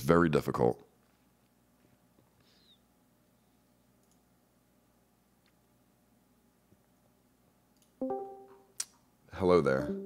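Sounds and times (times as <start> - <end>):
plucked guitar-like note: 8.0 - 8.7, 9.8 - 10.0.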